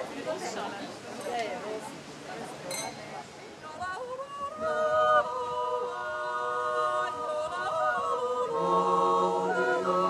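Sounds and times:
people talking quietly: 0.0s - 10.0s
wine glass clinking: 2.7s - 3.0s
women's choir yodeling: 3.7s - 10.0s.

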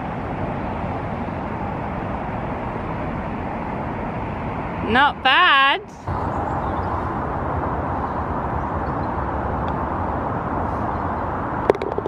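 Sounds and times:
distant road traffic: 0.0s - 12.0s
wind: 0.0s - 12.0s.

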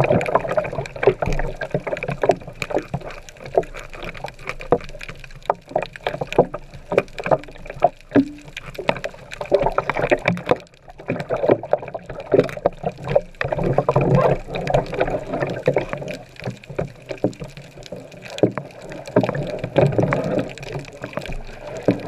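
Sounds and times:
muffled underwater wash: 0.0s - 22.0s
sharp clicks and crackles: 0.0s - 22.0s.

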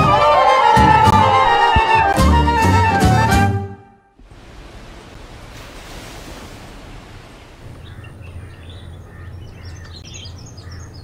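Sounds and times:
small birds chirping: 7.6s - 11.0s.

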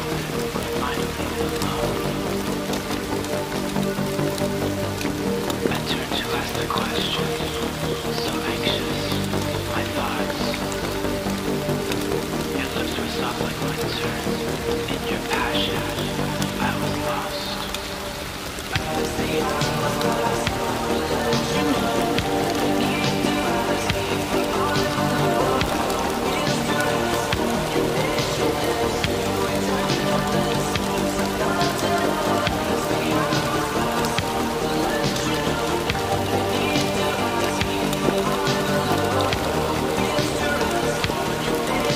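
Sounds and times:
raindrop ticks: 0.0s - 41.9s
slow music with long tones: 0.0s - 41.9s
steady rain: 0.0s - 41.9s.

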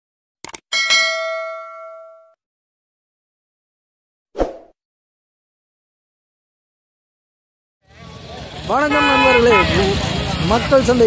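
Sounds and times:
notification bell ding: 0.8s - 2.4s.

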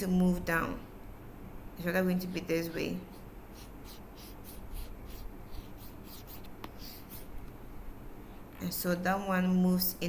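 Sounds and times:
faint steady hum: 0.0s - 10.0s
stylus scratching on tablet screen: 3.1s - 7.3s
stylus tap: 6.6s - 6.9s.

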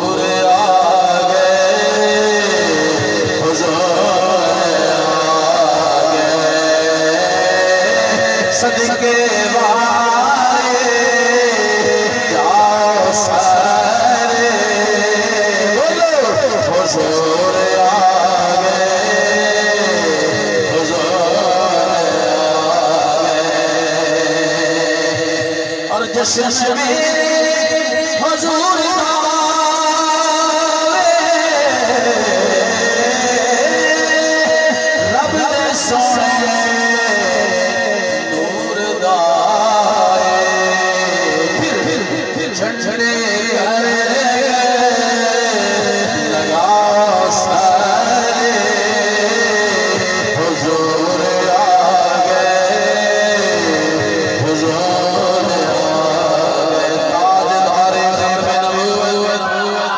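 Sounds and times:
chanting drone: 0.0s - 59.9s
person singing lead lines: 0.0s - 59.9s.

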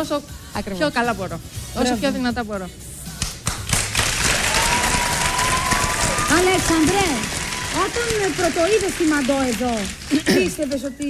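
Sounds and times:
audience applause: 3.7s - 10.6s.

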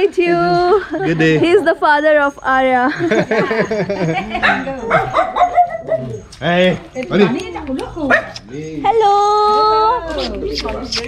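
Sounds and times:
dog barking: 4.3s - 8.5s
small dogs yipping and whining: 4.4s - 11.0s.

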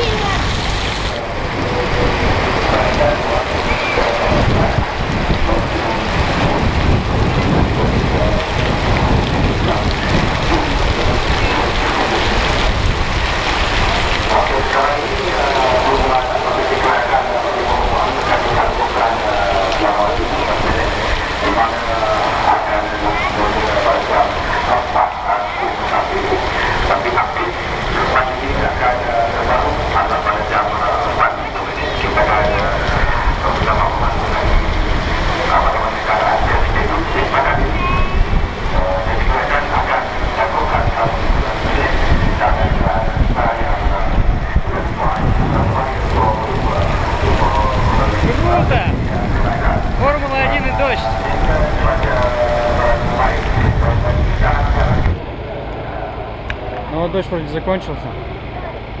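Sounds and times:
wind buffeting microphone: 0.0s - 56.8s
crowd chattering: 0.0s - 59.0s
heavy rain: 0.0s - 59.0s.

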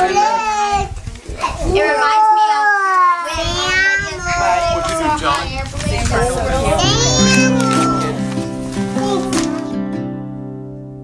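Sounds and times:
acoustic guitar picked notes: 6.6s - 11.0s.

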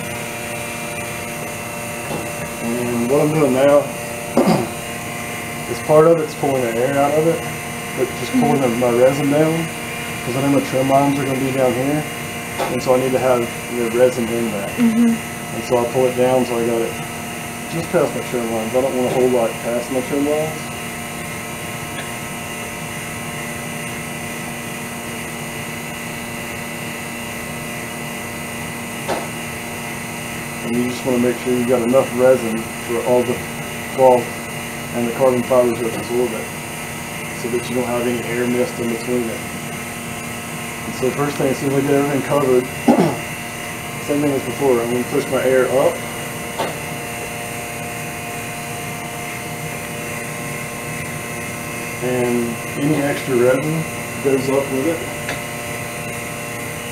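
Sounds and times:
vacuum pump humming and hissing: 0.0s - 56.9s.

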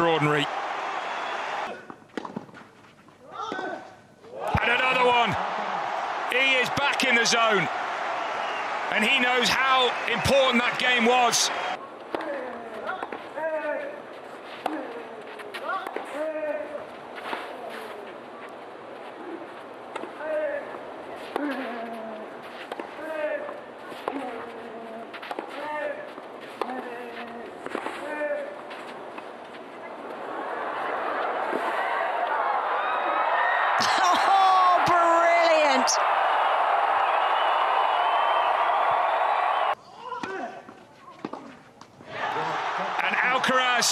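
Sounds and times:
crowd noise: 0.0s - 1.8s, 4.3s - 12.2s, 20.6s - 39.8s, 42.0s - 43.9s.

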